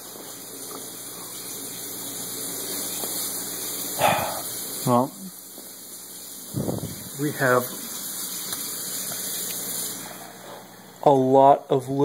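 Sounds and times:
hiss of moving water: 0.0 - 11.0
aquarium filter humming: 0.0 - 12.0.

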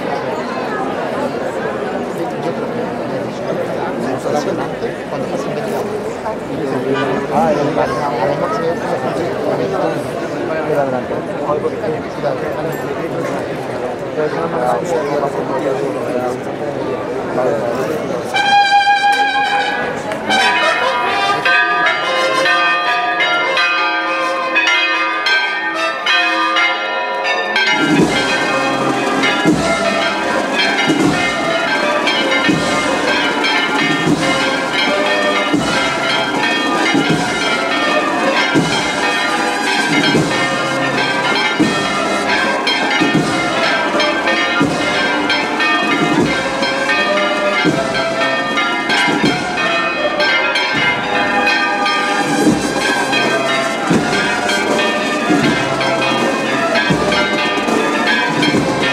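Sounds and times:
church bells pealing: 0.0 - 58.9
deeper bells striking: 18.3 - 58.9.

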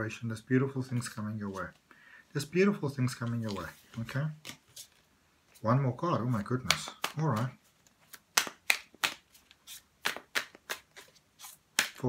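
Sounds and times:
cards being shuffled: 3.0 - 5.6, 6.3 - 12.0.

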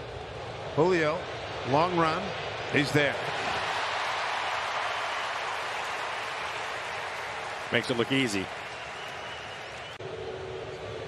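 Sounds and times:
crowd cheering and applauding: 2.1 - 11.0.

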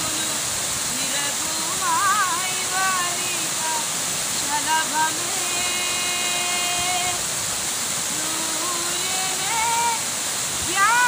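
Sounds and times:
woman singing: 0.0 - 7.2, 8.1 - 11.0
waterfall pouring into pool: 0.0 - 11.0.

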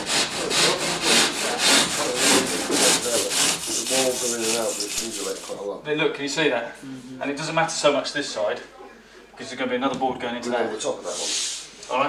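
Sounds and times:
hand saw rasping: 0.0 - 5.6
man talking: 0.4 - 8.7.

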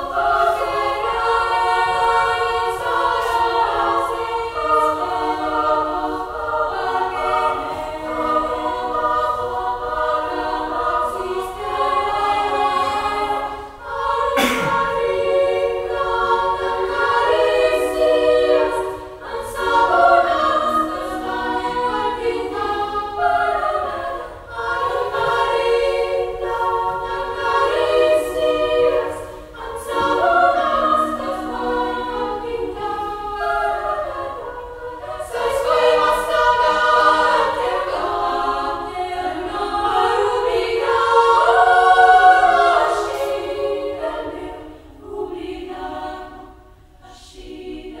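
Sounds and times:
women's choir singing: 0.0 - 48.0.

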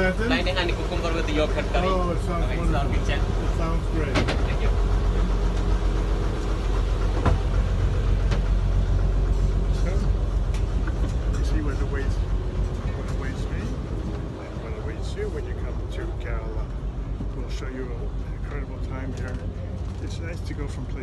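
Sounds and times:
boat engine humming: 0.0 - 21.0.

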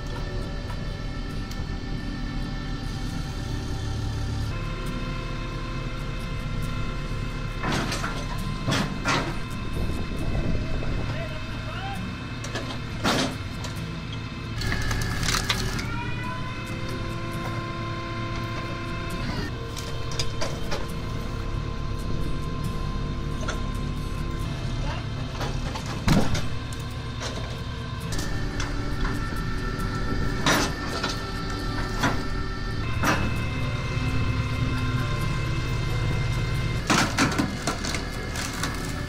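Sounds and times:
hydraulic log splitter running: 0.0 - 39.0
log cracking apart: 14.6 - 15.9, 37.0 - 39.0.

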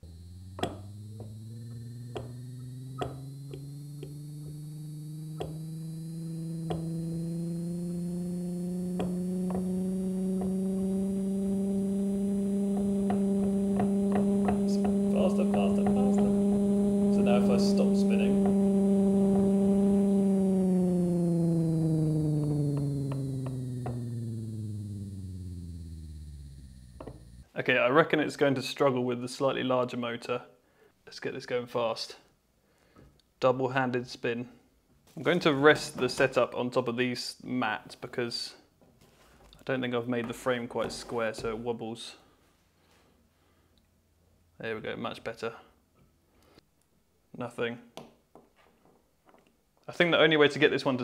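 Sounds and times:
faint clicks: 0.0 - 11.0
electric motor humming: 0.0 - 27.5.

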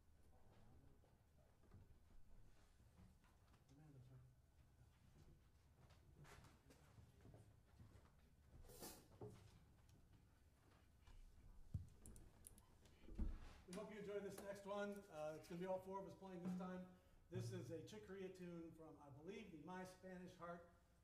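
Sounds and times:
man talking: 13.7 - 20.8.

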